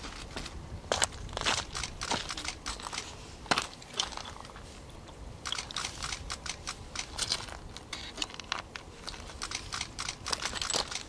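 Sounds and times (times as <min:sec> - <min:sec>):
rustling and crackling: 0:00.0 - 0:11.0
sharp clicks: 0:01.5 - 0:03.1, 0:05.4 - 0:07.5, 0:09.2 - 0:11.0.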